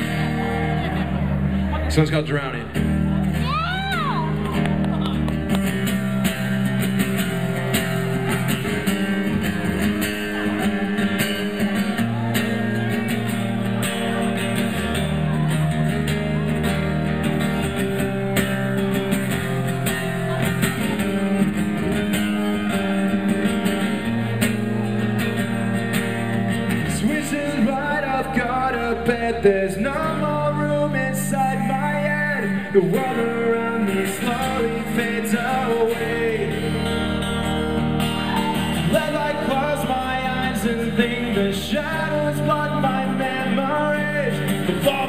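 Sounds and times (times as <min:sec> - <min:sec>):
acoustic guitar strumming: 0:00.0 - 0:45.0.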